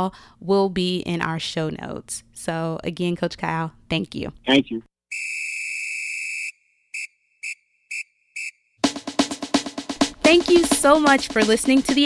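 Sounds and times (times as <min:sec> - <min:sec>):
high-pitched whistle blasts: 0:05.1 - 0:08.7.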